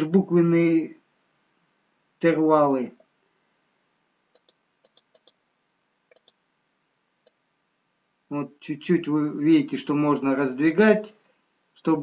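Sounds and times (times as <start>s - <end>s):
computer mouse clicks: 4.3s - 5.4s, 6.1s - 6.4s.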